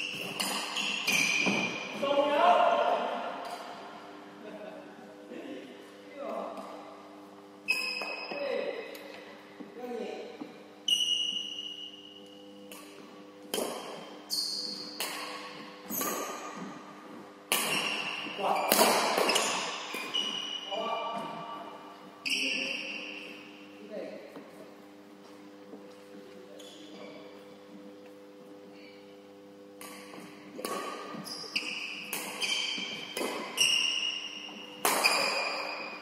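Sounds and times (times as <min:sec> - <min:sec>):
steady low hum: 0:00.0 - 0:36.0
racket hitting shuttlecock: 0:00.1 - 0:02.0, 0:12.7 - 0:16.8, 0:17.5 - 0:20.4, 0:29.8 - 0:36.0.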